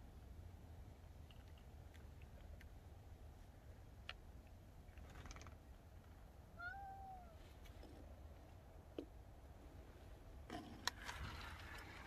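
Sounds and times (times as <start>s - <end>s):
cat meowing: 6.6s - 7.4s.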